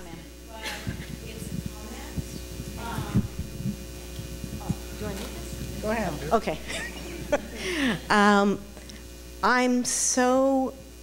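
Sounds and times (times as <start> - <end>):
electrical hum: 0.0 - 11.0
microphone handling thumps: 0.7 - 6.2.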